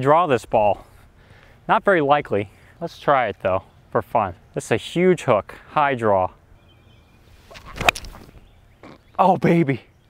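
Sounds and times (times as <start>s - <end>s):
golf club swish: 7.3s - 8.4s.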